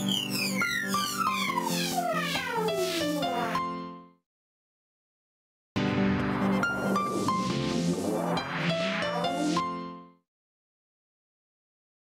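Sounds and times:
falling sweep sound effect: 6.4s - 9.6s.

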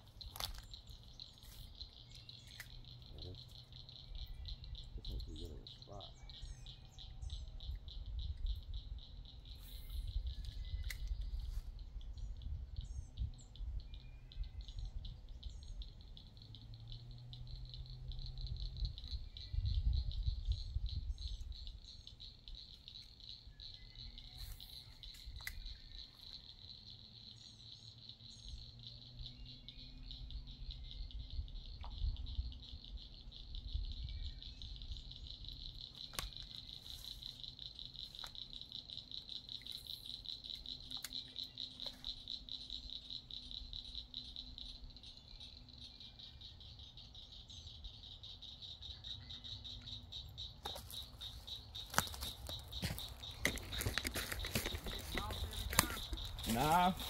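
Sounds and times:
insects trilling: 0.0s - 57.0s.

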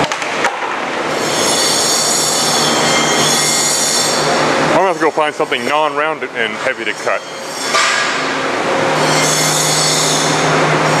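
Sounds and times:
band saw running: 1.0s - 11.0s.

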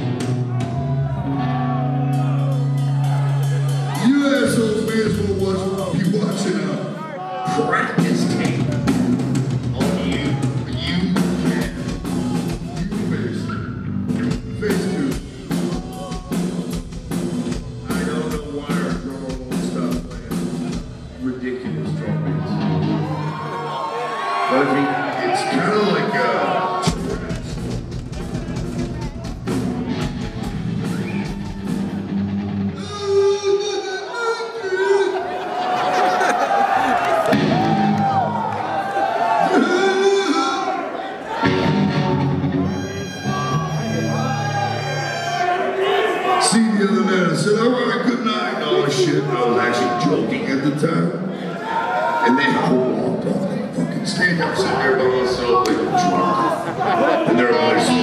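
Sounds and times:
drums pounding: 0.0s - 1.3s, 7.4s - 21.6s, 26.7s - 32.9s, 37.2s - 40.2s
crowd noise: 0.0s - 58.0s
man speaking into a microphone: 4.0s - 8.8s, 17.8s - 20.4s, 24.5s - 27.6s, 46.4s - 51.3s, 52.2s - 58.0s
distorted electric guitars: 26.8s - 33.2s, 41.4s - 45.4s.

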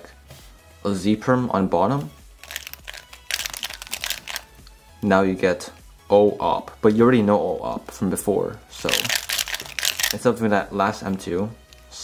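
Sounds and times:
puzzle cube clicking as turned: 2.4s - 4.5s, 8.9s - 10.2s.

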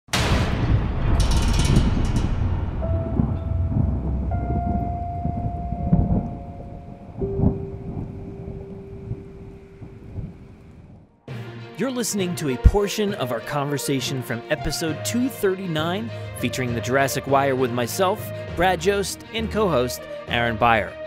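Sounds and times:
thunderclap rumbling: 0.1s - 11.3s
held musical notes: 2.8s - 10.7s.

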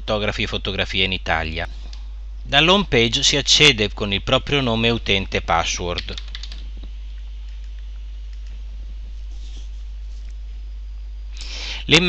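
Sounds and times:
steady low hum: 0.0s - 12.0s
keyboard typing: 6.0s - 6.7s.

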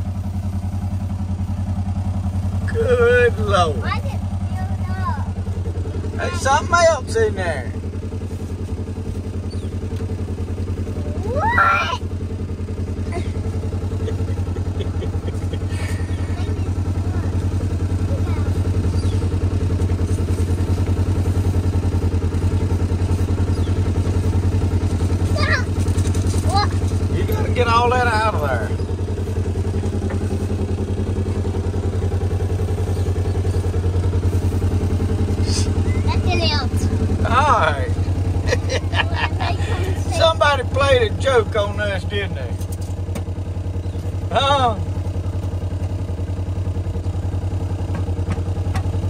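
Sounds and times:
vehicle engine idling: 0.0s - 49.0s
child's voice: 3.8s - 5.4s, 11.0s - 12.1s, 16.1s - 18.6s, 25.2s - 25.8s, 26.4s - 27.6s, 35.8s - 37.0s, 39.0s - 40.4s.

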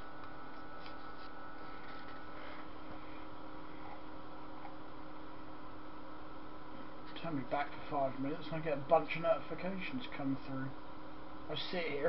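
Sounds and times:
faint hum: 0.0s - 12.0s
thin whine: 0.0s - 12.0s.

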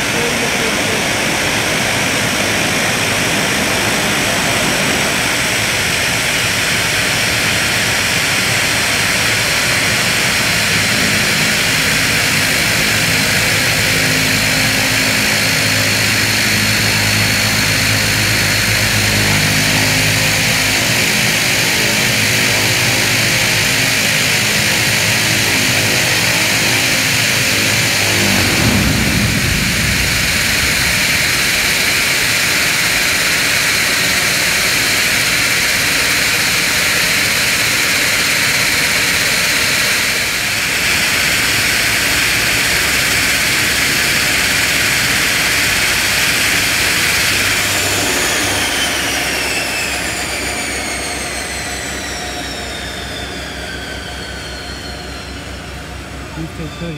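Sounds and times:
turboprop engines idling: 0.0s - 56.9s.

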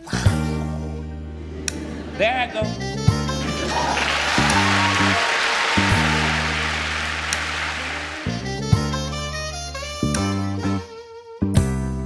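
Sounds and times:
audience applause: 3.4s - 8.6s
hip-hop instrumental beat: 5.8s - 11.8s.

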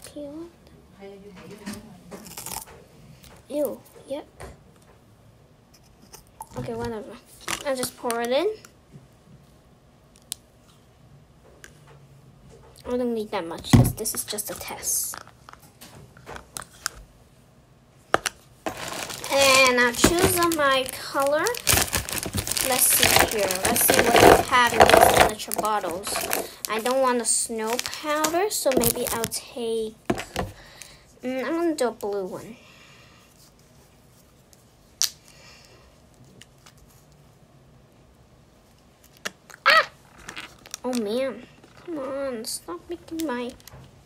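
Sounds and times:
plastic utensils clicking and tapping: 18.2s - 27.1s.

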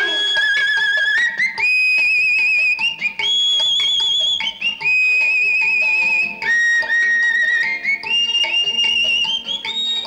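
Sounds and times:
high wavering held melody: 0.0s - 2.4s.

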